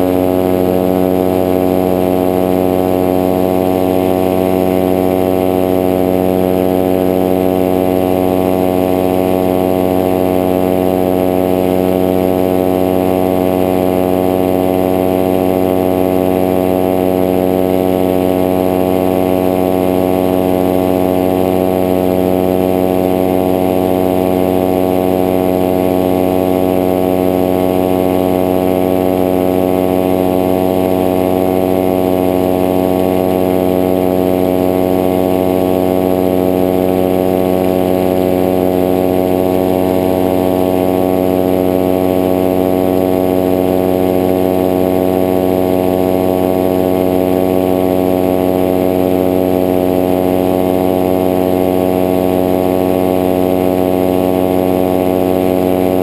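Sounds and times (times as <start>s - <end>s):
propeller engine droning: 0.0s - 56.0s.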